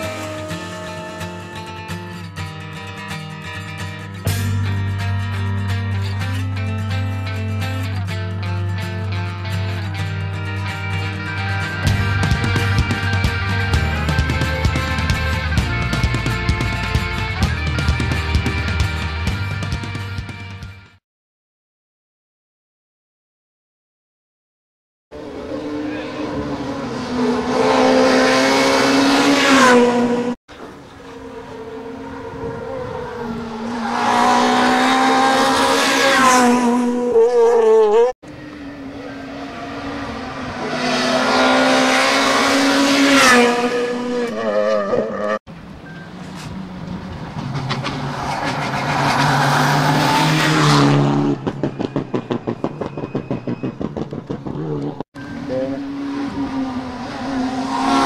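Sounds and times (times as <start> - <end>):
rally car engines revving: 0.0 - 2.2, 25.2 - 58.0.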